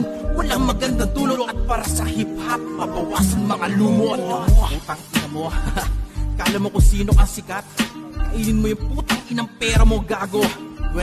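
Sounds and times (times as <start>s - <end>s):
rapping over a beat: 0.0s - 11.0s
deep bass hits: 4.5s - 4.8s.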